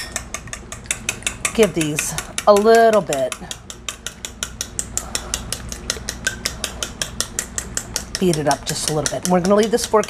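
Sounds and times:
fork beating eggs in bowl: 0:00.0 - 0:10.0.

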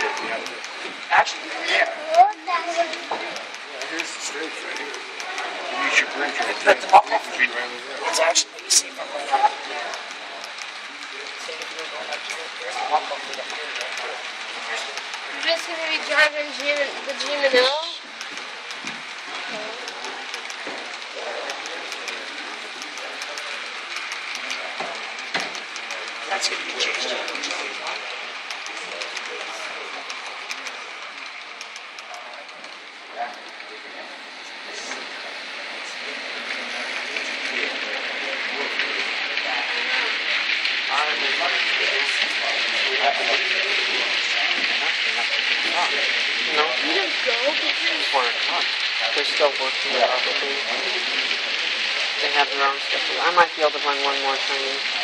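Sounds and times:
faint voices: 0:00.0 - 0:55.0
model train rolling on track: 0:00.0 - 0:55.0
people talking indistinctly: 0:00.0 - 0:55.0.

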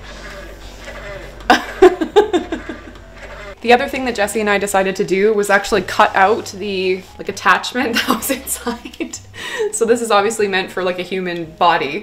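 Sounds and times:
woman laughing: 0:01.5 - 0:03.0, 0:07.8 - 0:09.8.

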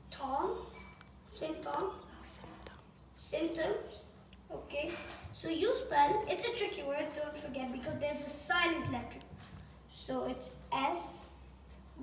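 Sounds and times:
child speaking: 0:00.1 - 0:00.7, 0:01.3 - 0:09.3, 0:09.9 - 0:11.4.

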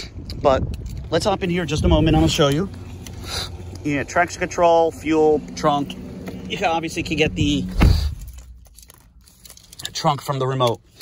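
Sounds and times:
car key handling rustle: 0:00.4 - 0:04.0, 0:07.7 - 0:11.0
low thump: 0:07.6 - 0:08.4.

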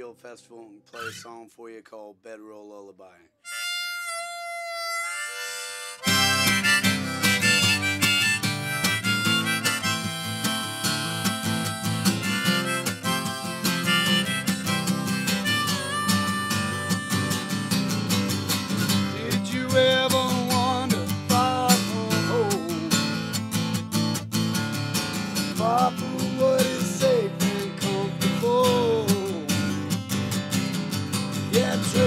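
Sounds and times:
harmonica playing held notes: 0:03.4 - 0:23.4, 0:31.5 - 0:32.0
strummed acoustic guitar: 0:05.9 - 0:32.0.

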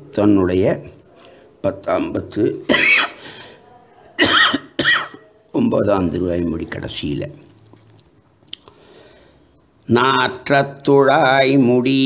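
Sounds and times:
person coughing: 0:02.7 - 0:03.2, 0:04.2 - 0:05.2.

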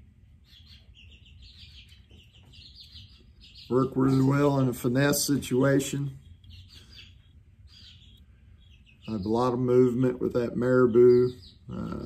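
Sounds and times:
baby chicks peeping: 0:00.0 - 0:12.0.

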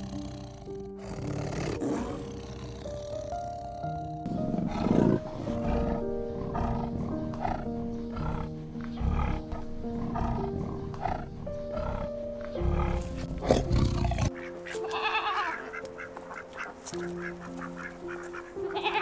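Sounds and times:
leopard growling: 0:00.0 - 0:14.4
background music with held notes: 0:00.0 - 0:19.0.

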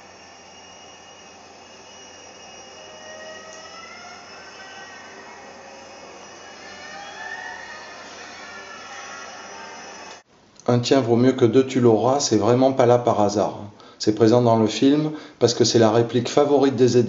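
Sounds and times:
eerie dissonant film music: 0:01.9 - 0:10.2.

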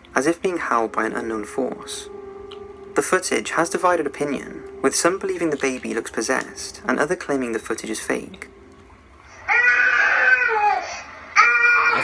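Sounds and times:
baby crying: 0:09.3 - 0:12.0.

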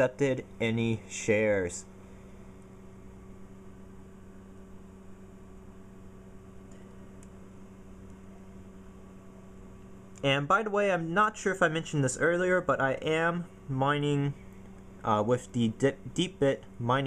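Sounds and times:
computer hum: 0:00.0 - 0:17.0
faint fan noise: 0:00.0 - 0:17.0.

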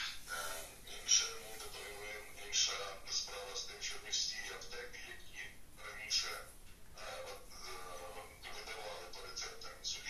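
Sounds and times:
person talking: 0:00.0 - 0:10.0.

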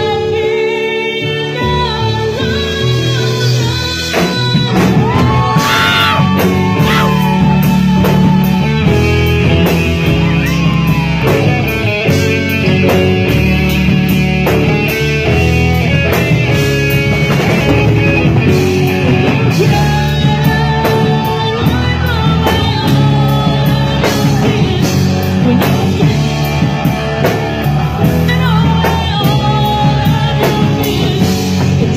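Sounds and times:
bass guitar: 0:00.0 - 0:31.9
drum kit: 0:00.0 - 0:31.9
electric guitar lead: 0:00.0 - 0:31.9.

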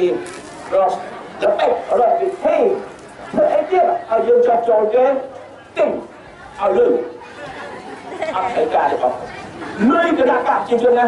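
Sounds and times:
man talking into a microphone: 0:00.0 - 0:07.2, 0:08.3 - 0:09.2, 0:09.8 - 0:11.0
crowd chatter: 0:00.0 - 0:11.0.

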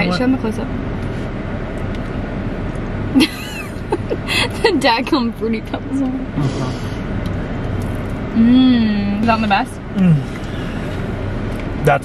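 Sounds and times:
car and street hum: 0:00.0 - 0:12.0.

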